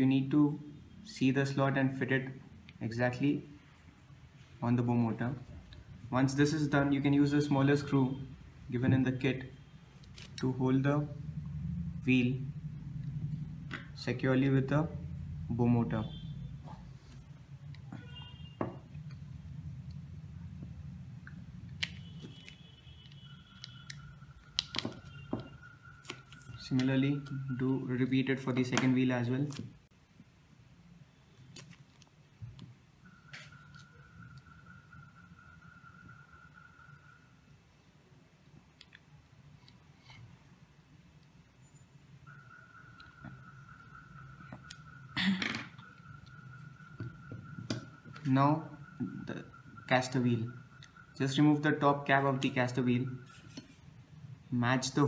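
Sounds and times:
faint steady whine: 0.0 - 55.0
steady low hum: 2.0 - 28.6.

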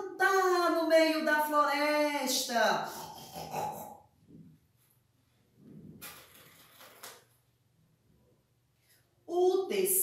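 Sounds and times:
faint paper rustling: 5.6 - 7.5.

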